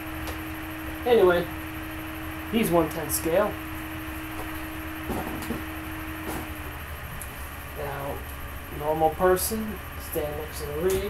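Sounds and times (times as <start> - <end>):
steady low room hum: 0.0 - 11.0.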